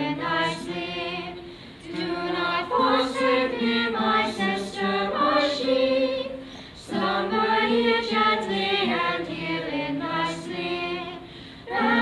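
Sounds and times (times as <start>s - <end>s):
group singing in unison: 0.0s - 12.0s.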